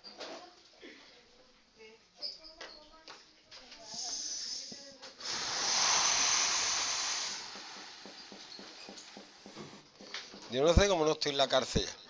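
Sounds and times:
long breathy hiss: 3.8s - 8.4s.

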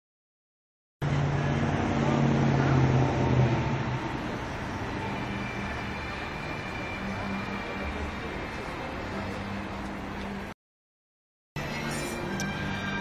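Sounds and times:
street traffic: 1.0s - 10.6s, 11.6s - 13.0s
vehicle engine humming: 1.0s - 10.6s, 11.6s - 13.0s.

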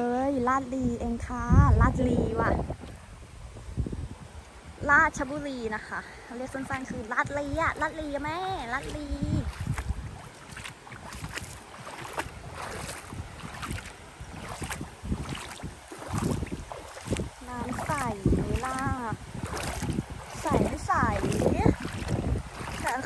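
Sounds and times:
wind rumbling on microphone: 0.0s - 23.0s
shallow river flowing: 2.4s - 23.0s
voices talking: 4.8s - 9.5s, 17.4s - 19.2s, 20.4s - 21.8s, 22.8s - 23.0s.

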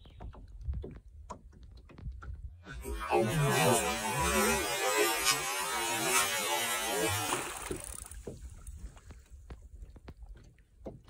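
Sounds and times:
fish splashing in water: 7.2s - 8.6s.

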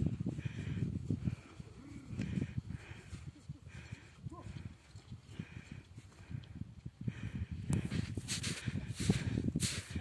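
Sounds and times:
horse hooves thudding in snow: 0.0s - 6.5s, 7.8s - 10.0s.

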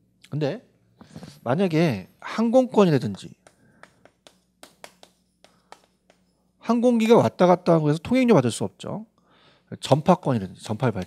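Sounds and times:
chalk tapping on chalkboard: 3.0s - 6.6s.

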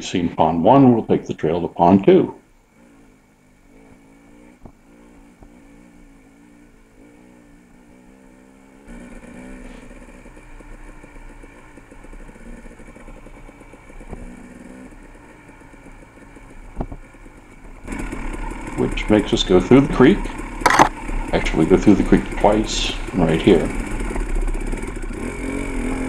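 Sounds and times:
dirt bike engine running: 0.0s - 26.0s.

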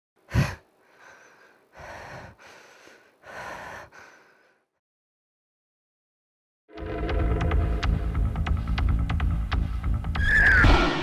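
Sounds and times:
person breathing heavily: 0.2s - 4.8s.

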